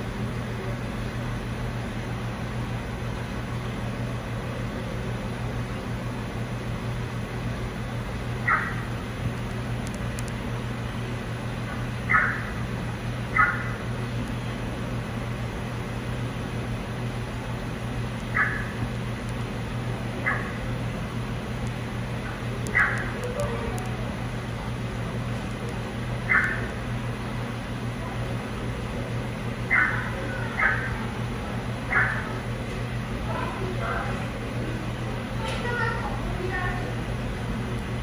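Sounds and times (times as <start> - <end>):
low machine hum: 0.0 - 38.0.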